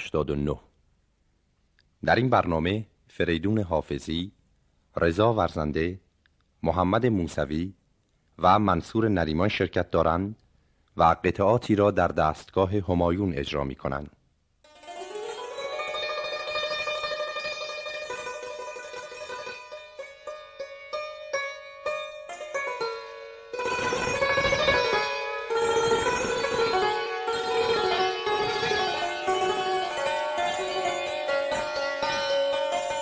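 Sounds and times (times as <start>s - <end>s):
plucked string notes: 14.7s - 33.0s.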